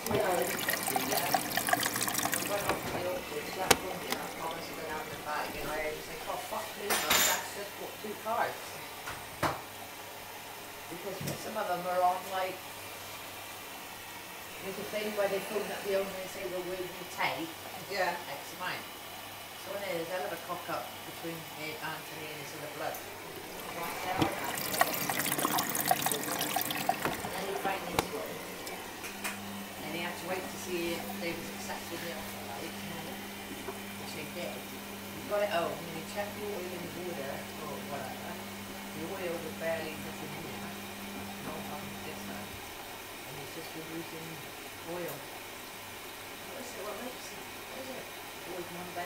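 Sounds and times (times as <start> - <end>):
laundry sloshing in drum: 0.0 - 6.5, 23.1 - 29.0
washing machine drum humming: 0.0 - 7.5, 22.1 - 43.0
washing machine click: 2.5 - 4.8.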